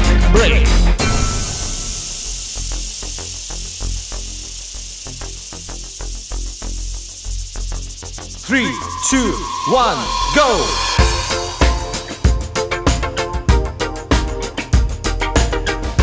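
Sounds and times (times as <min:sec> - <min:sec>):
high insect-like buzz: 0:01.6 - 0:12.8
rapid ticking: 0:02.2 - 0:09.4
person counting down: 0:08.5 - 0:10.8.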